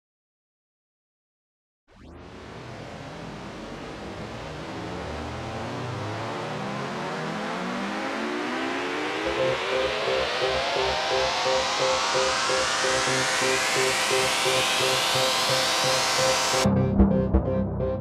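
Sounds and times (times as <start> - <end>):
synth riser sweeping upward: 1.9 - 17.6
repeating synth note: 5.9 - 18.0
low pulsing beat: 9.3 - 18.0.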